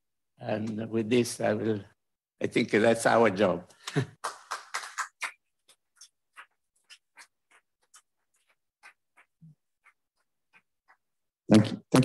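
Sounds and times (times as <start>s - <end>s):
audience applause: 4.2s - 5.2s.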